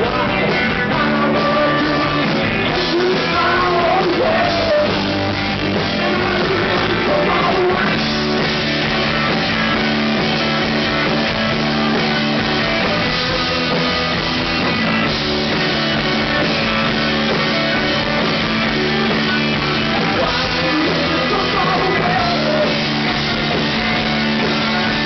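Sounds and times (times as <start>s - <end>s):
drum kit: 0.0s - 25.0s
electric guitar chords: 0.0s - 25.0s.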